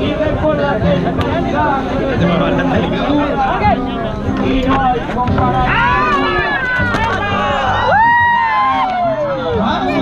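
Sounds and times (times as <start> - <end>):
people shouting and yelling: 0.0 - 10.0.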